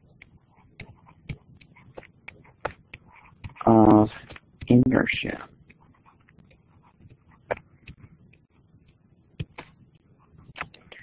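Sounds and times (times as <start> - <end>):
stylus tapping on tablet: 0.1 - 3.6, 4.2 - 4.8, 5.6 - 9.8, 10.4 - 11.0.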